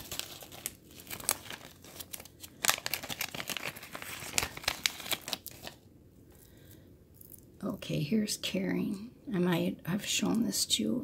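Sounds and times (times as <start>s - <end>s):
plastic bags crinkling: 0.0s - 5.8s.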